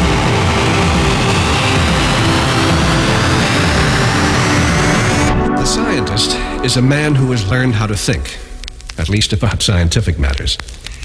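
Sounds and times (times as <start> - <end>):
techno dance music: 0.0 - 8.6
rising synth sweep: 0.0 - 8.9.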